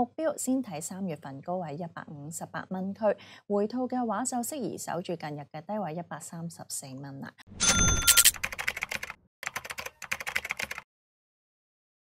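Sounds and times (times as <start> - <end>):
keyboard typing clicks: 7.6 - 10.8.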